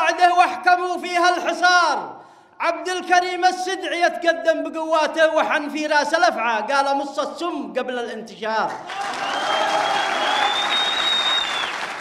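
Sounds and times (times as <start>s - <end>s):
audience applauding: 8.8s - 12.0s
high whistle: 9.2s - 11.9s.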